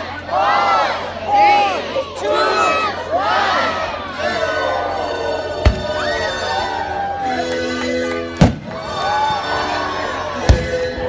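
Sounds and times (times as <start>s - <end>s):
music playing: 4.3s - 11.0s
firework bang: 5.6s - 6.1s, 8.4s - 8.8s.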